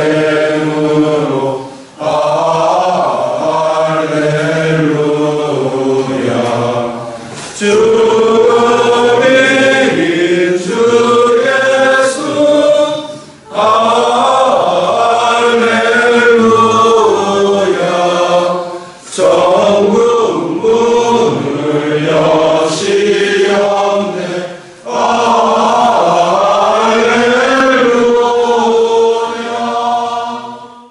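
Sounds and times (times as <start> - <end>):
congregation singing a hymn: 0.0 - 30.9.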